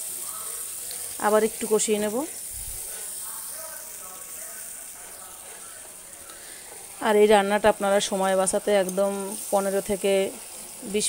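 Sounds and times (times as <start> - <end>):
spice paste sizzling in oil: 0.0 - 11.0.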